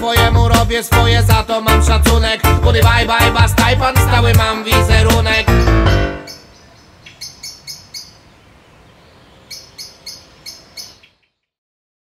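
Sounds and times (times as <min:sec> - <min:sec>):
faint outdoor hiss: 0:03.7 - 0:11.4
bird chirping: 0:04.1 - 0:11.6.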